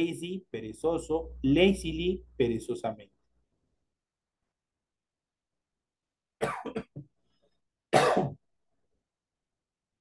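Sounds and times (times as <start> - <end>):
man coughing: 6.4 - 7.1, 7.9 - 8.5.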